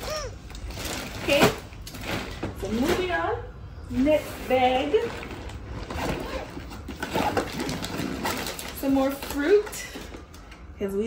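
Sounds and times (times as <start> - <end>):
zipper pulled open: 5.9 - 8.6.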